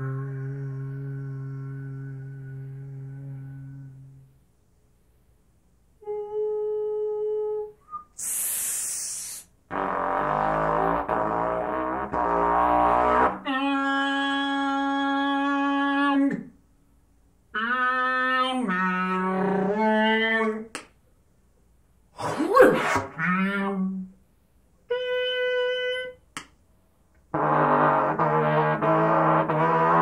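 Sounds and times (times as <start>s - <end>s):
hissing air through trumpet: 8.0s - 9.9s
solo trumpet playing: 24.9s - 26.2s, 27.3s - 30.0s.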